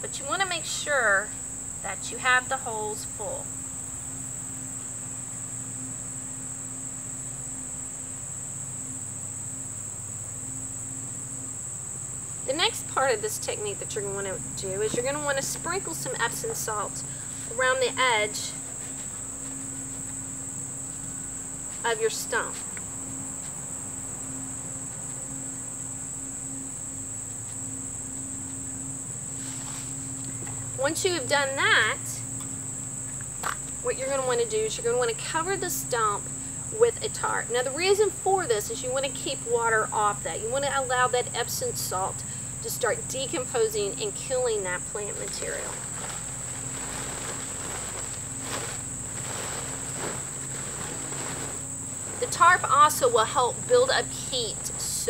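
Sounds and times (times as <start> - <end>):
crickets trilling: 0.0 - 55.0
high-pitched insect chorus: 0.0 - 55.0
plastic tarp crinkling: 44.1 - 53.2.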